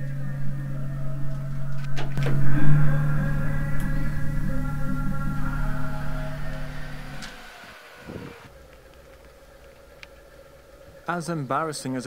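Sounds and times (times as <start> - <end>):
music: 0.0 - 7.4.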